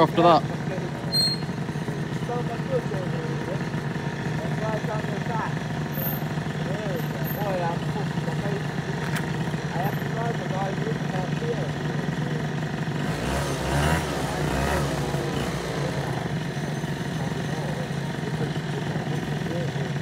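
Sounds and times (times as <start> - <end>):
engine hum: 0.0 - 20.0.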